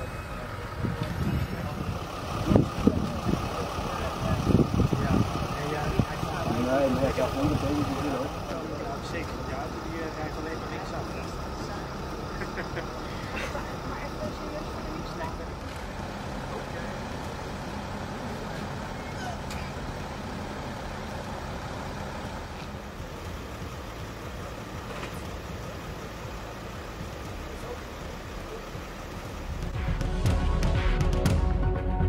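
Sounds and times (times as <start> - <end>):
people talking: 0.0 - 19.7, 25.3 - 29.4
vehicle engine idling: 0.0 - 32.0.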